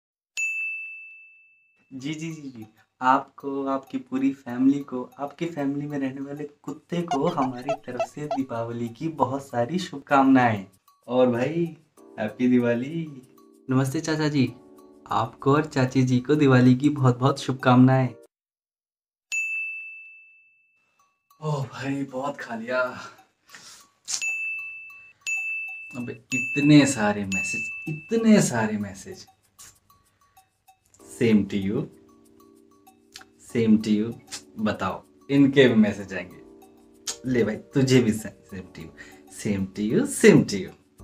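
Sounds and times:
bright bell-like chime: 0.4s - 1.9s, 24.2s - 28.1s.

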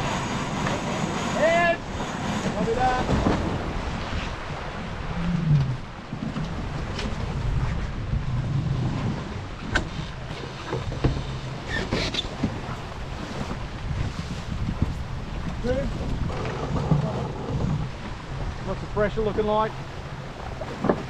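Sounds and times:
water rushing along a hull: 0.0s - 21.0s
wind buffeting the microphone: 0.0s - 21.0s.

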